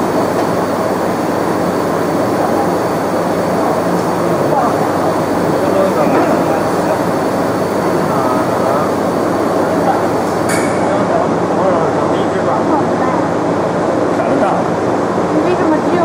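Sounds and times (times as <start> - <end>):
factory machinery running: 0.0 - 16.0
indistinct voices: 1.9 - 13.4
sharp click: 10.4 - 10.9.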